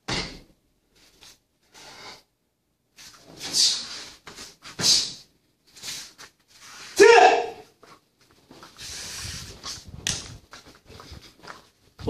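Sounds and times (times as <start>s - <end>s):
person shouting sharply: 7.0s - 7.7s
short rustling: 7.7s - 12.0s.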